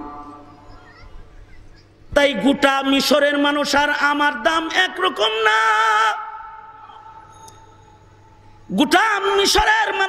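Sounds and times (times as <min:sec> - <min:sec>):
faint sound system hum: 0:00.0 - 0:10.0
man chanting through loudspeakers: 0:02.2 - 0:06.6, 0:08.7 - 0:10.0.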